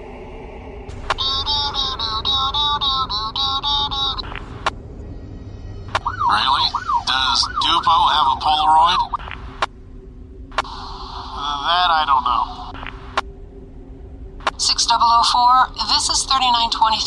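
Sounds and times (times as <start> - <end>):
garbled warbling radio sound: 0.9 - 4.8, 5.9 - 9.7, 10.5 - 13.2
pulsing electronic beeps: 0.9 - 9.7
radio transmission clicks: 4.2 - 4.8, 9.0 - 9.8, 12.4 - 13.3, 14.4 - 14.7.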